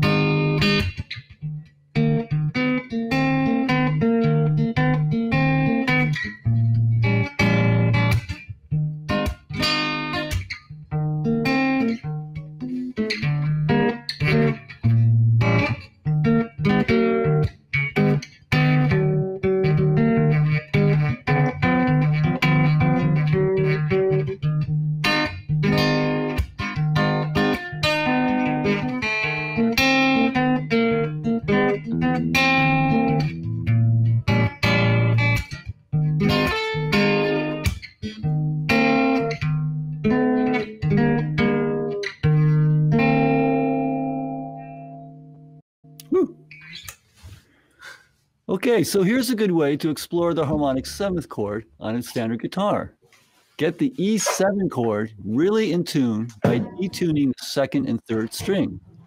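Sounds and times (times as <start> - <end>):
guitar playing blues chords: 0.0 - 46.9, 49.0 - 59.0.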